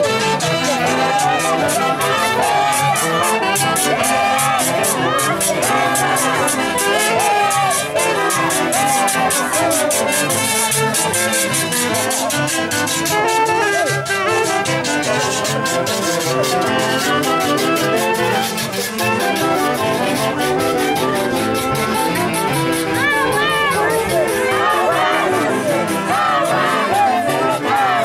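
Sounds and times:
brass band with saxophones: 0:00.0 - 0:28.0
percussion beat: 0:00.0 - 0:28.0.

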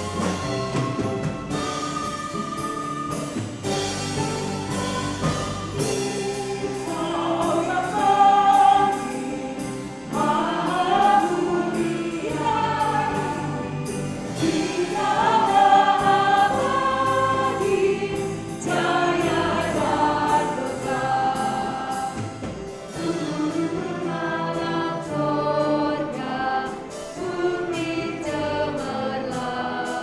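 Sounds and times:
instrumental accompaniment: 0:00.0 - 0:30.0
voices singing a hymn in harmony: 0:00.0 - 0:30.0.

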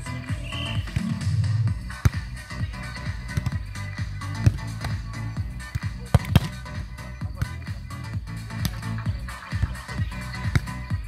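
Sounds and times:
dance music over loudspeaker: 0:00.0 - 0:11.0
volleyball being hit: 0:00.4 - 0:07.9, 0:08.5 - 0:11.0.

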